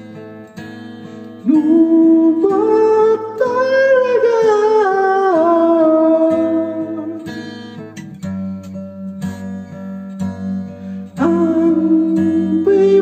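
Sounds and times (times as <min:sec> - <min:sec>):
acoustic guitar plucked: 0:00.0 - 0:13.0
man singing: 0:01.4 - 0:07.3, 0:11.2 - 0:13.0.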